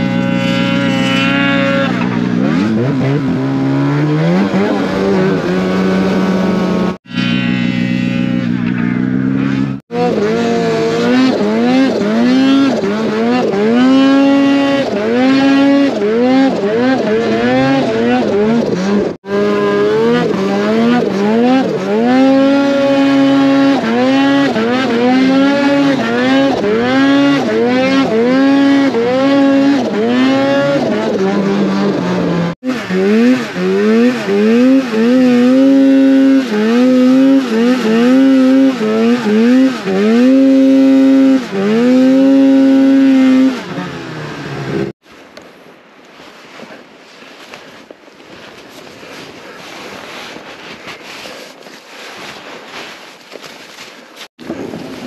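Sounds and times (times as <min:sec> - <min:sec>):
snowmobile engine revving: 0:00.0 - 0:45.0, 0:48.3 - 0:55.0.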